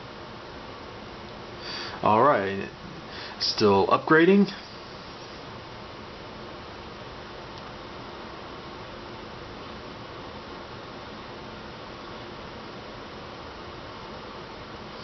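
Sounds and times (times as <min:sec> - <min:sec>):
steady hiss: 0:00.0 - 0:15.0.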